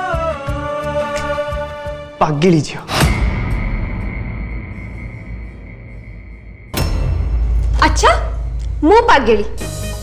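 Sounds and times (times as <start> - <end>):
low booming music drone: 2.9 - 9.4.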